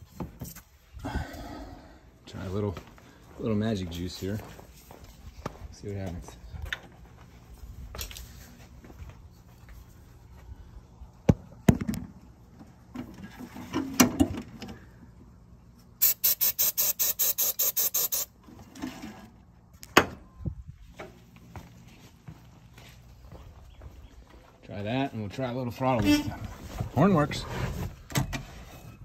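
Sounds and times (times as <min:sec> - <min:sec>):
aerosol can spraying pulses: 0:16.0 - 0:18.3.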